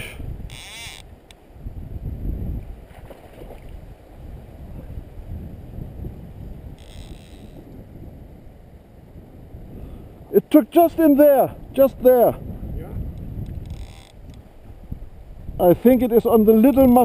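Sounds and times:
flowing river: 0:00.0 - 0:12.5
wind buffeting microphone: 0:00.0 - 0:17.0.

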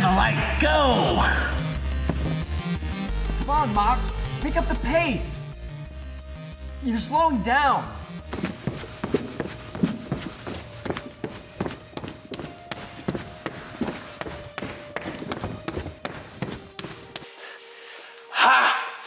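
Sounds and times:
faint steady musical tone: 0:00.0 - 0:19.0
people running footsteps: 0:01.8 - 0:03.8, 0:08.3 - 0:17.3.

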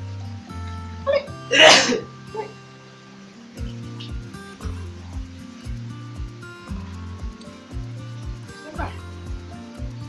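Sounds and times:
background music with held notes: 0:00.0 - 0:10.0
loud breathy vocal burst: 0:01.5 - 0:02.0.

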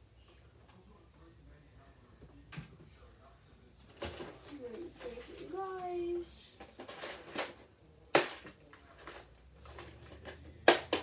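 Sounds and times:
small objects clicking and knocking: 0:06.6 - 0:11.0.

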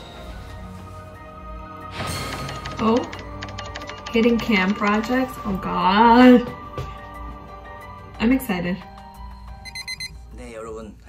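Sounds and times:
high electronic beeps: 0:09.6 - 0:10.2.

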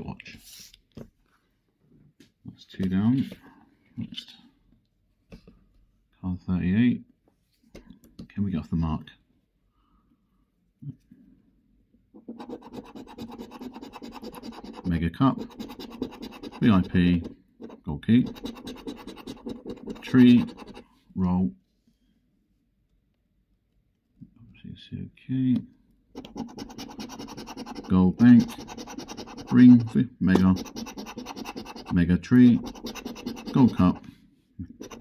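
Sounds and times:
coin scraping scratch card: 0:12.2 - 0:20.8, 0:26.2 - 0:34.0, 0:34.7 - 0:35.0.

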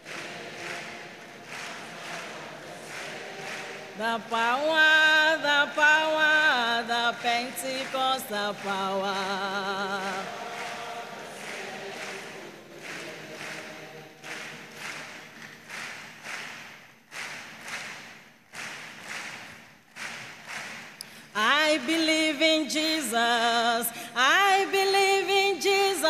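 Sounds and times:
congregation singing unaccompanied: 0:00.0 - 0:15.9, 0:21.4 - 0:26.0.

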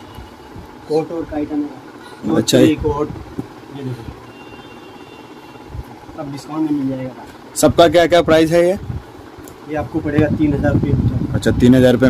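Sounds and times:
faint high whine: 0:00.0 - 0:09.0.

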